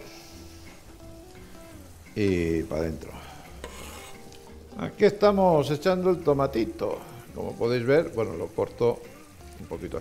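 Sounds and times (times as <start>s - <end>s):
quiet background music: 0.0s - 10.0s
vegetables sizzling in a pan: 0.0s - 10.0s.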